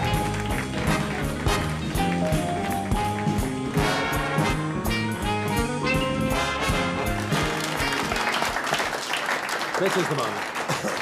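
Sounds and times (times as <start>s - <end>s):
applause: 0.0s - 4.4s, 6.9s - 11.0s
brass band music: 0.0s - 8.8s.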